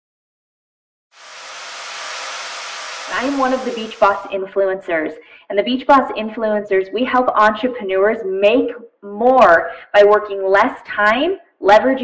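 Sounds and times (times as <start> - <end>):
white noise hiss: 1.2 - 4.4.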